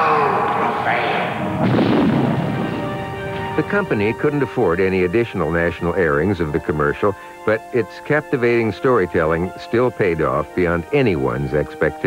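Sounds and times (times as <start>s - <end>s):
music: 0.0s - 12.0s
rumbling explosion blast: 1.3s - 4.3s.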